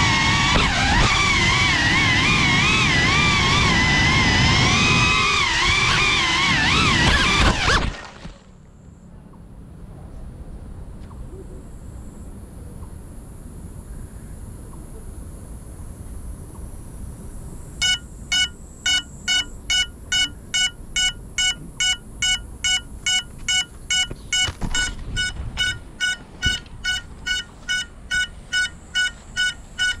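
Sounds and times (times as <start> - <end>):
high beeper beeps: 17.8 - 29.6.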